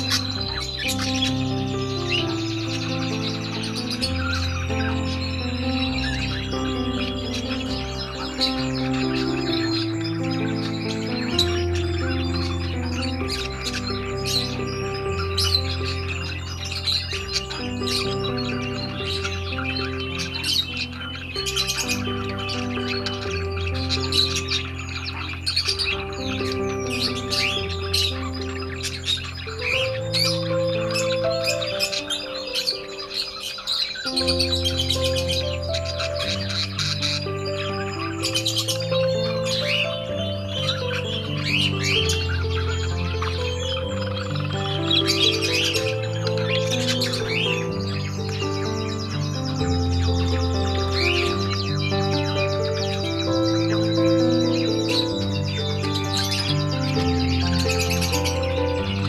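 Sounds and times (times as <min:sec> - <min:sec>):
budgerigars chirping: 0:00.0 - 0:59.0
soft background music: 0:00.0 - 0:59.0.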